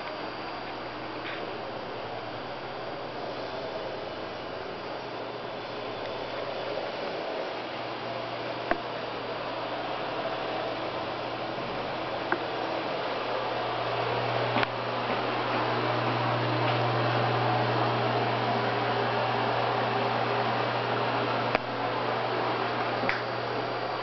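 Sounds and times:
ventilation fan humming: 0:00.0 - 0:24.0.

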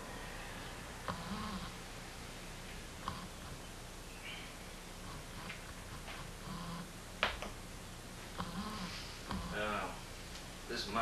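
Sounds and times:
steady low hum and hiss: 0:00.0 - 0:11.0.

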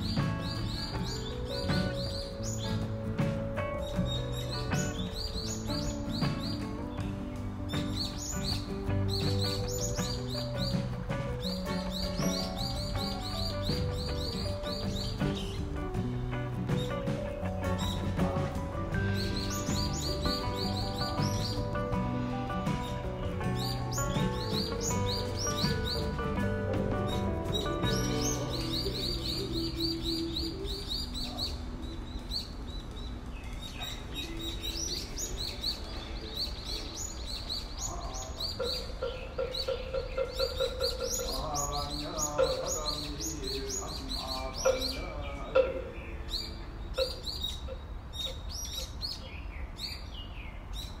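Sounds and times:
background music: 0:00.0 - 0:47.8
small birds chirping: 0:00.0 - 0:51.0.

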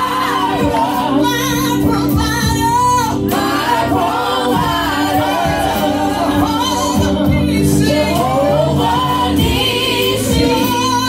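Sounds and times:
women singing gospel: 0:00.0 - 0:11.0.

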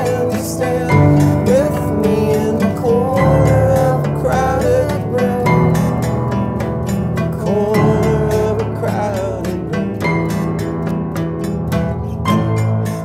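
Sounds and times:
person singing: 0:00.0 - 0:10.8
sustained instrumental chords: 0:00.0 - 0:13.0.

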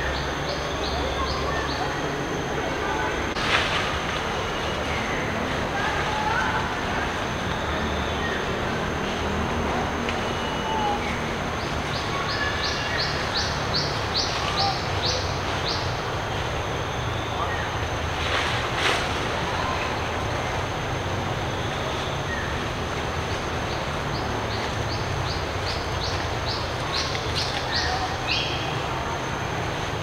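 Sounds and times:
steady high whine: 0:00.0 - 0:30.0.

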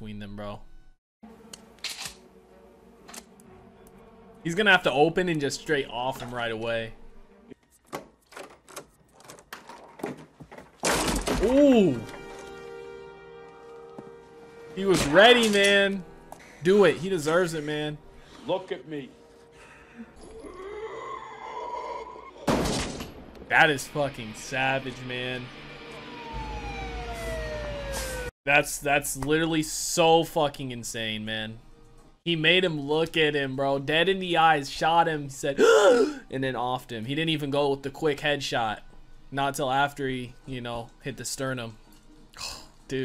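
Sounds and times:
siren gliding down in pitch: 0:25.8 - 0:28.3.

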